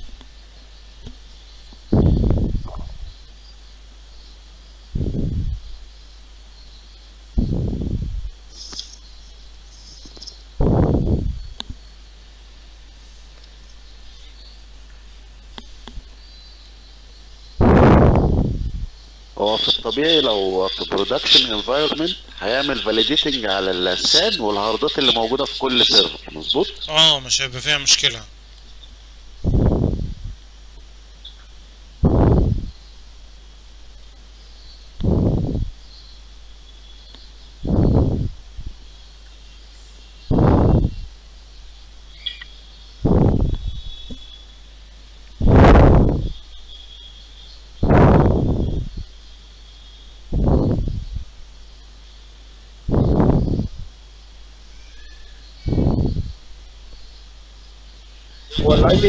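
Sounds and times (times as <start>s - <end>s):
faint steady hiss: 0.0s - 59.0s.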